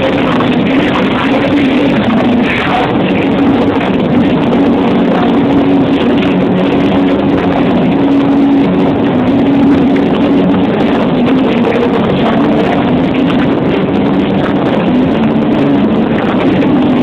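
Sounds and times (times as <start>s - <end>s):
loud live rap music: 0.0s - 7.7s
low droning tone: 0.0s - 17.0s.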